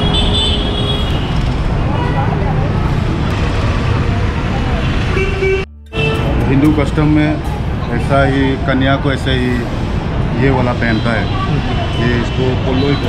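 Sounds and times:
motor vehicles passing: 0.0 - 13.0
voices of passers-by: 0.0 - 13.0
car horn toot: 5.2 - 6.8.

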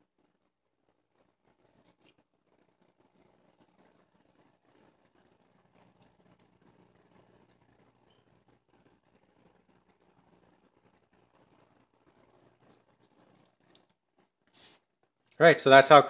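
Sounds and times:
faint room hum: 0.0 - 16.0.

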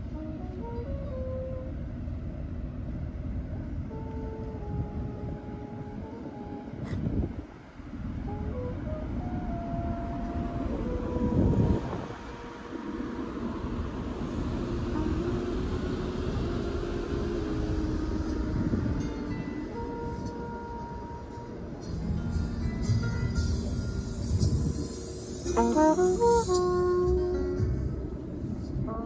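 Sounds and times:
faint music of held notes: 0.0 - 29.0
low rumbling noise: 0.0 - 29.0.

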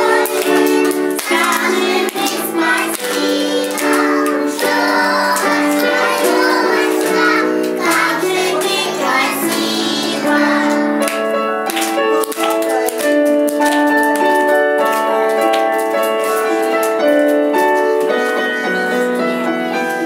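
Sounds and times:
children singing: 0.0 - 11.1
musical accompaniment: 0.0 - 20.0.

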